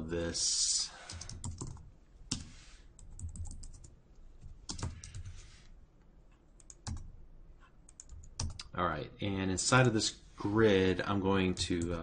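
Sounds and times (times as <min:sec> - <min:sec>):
computer keyboard typing: 0:01.1 - 0:05.4, 0:06.6 - 0:07.1, 0:07.9 - 0:08.7.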